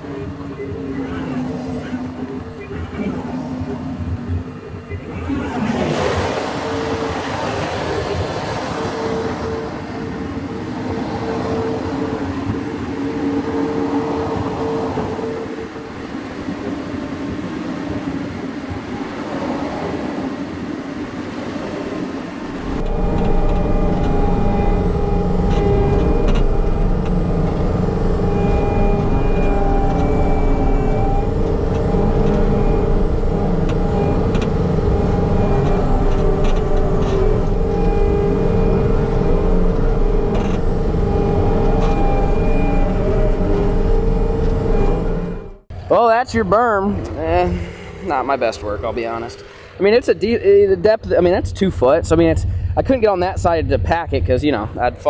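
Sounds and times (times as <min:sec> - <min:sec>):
loader engine running: 0:00.0 - 0:17.0, 0:22.2 - 0:49.8, 0:50.5 - 0:55.0.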